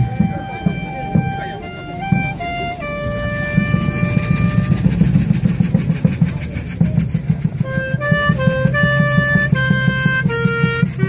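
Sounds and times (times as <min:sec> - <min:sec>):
drum and percussion beat: 0:00.0 - 0:11.0
wind instrument melody: 0:00.0 - 0:11.0.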